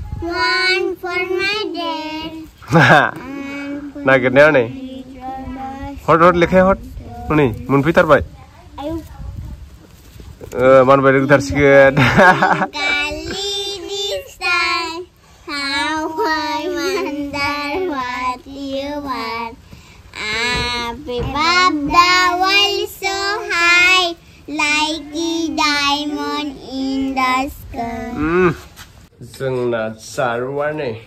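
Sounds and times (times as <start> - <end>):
child singing in a high voice: 0.0 - 7.8, 12.5 - 28.5.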